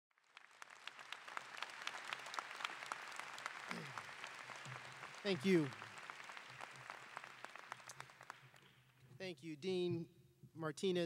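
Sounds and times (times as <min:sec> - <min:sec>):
audience applauding: 0:00.1 - 0:09.0.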